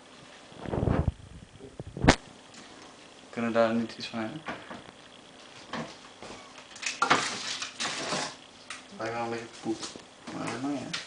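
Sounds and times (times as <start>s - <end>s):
items scraping and knocking in fridge: 7.0s - 8.4s.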